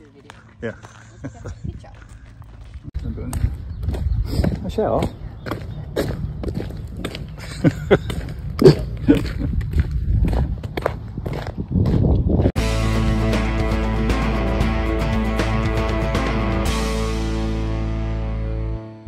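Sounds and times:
footsteps on gravel: 0.0s - 12.6s
background music: 12.6s - 19.0s.

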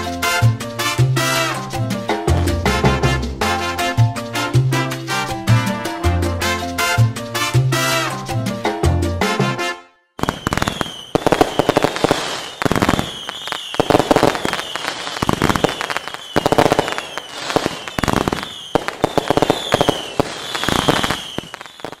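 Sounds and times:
fireworks bangs and crackling: 10.2s - 22.0s
high falling whistles: 10.2s - 22.0s.

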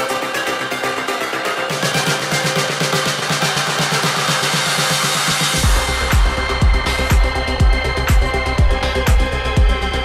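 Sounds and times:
electronic dance music: 0.0s - 10.0s
pulsing bass line: 0.0s - 10.0s.

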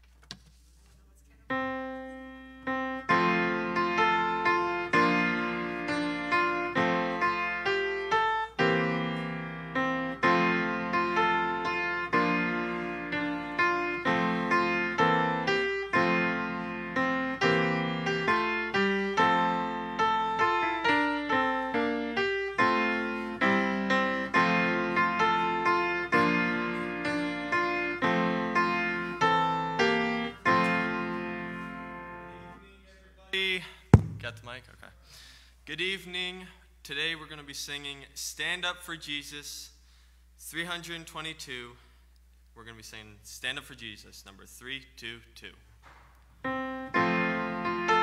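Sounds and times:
solo piano piece: 1.5s - 32.5s, 46.4s - 48.0s.

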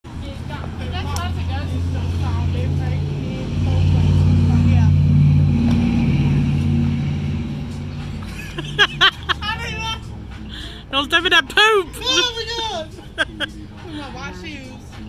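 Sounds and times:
vehicle engine revving: 0.2s - 11.3s.

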